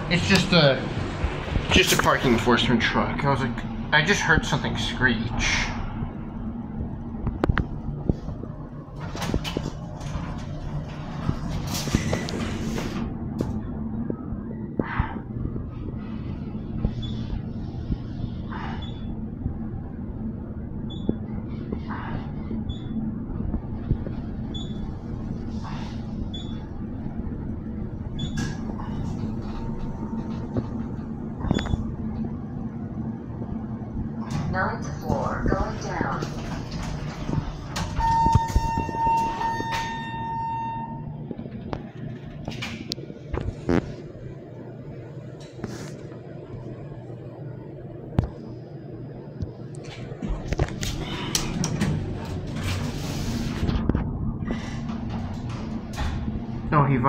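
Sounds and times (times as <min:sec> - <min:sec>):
elevator machine hum and rumble: 0:00.0 - 0:57.0
elevator doors closing: 0:05.4 - 0:44.2, 0:49.6 - 0:56.9.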